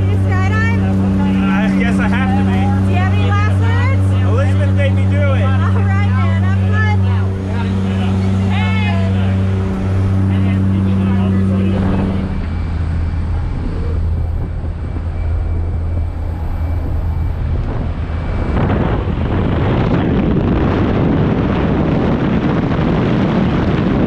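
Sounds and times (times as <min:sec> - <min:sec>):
propeller engine drone: 0:00.0 - 0:24.0
wind rushing: 0:00.0 - 0:24.0.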